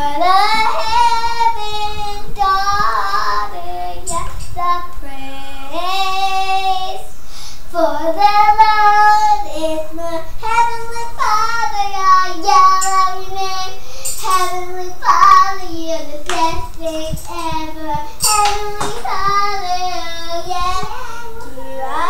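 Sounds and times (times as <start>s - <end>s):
girl singing: 0.0s - 22.0s.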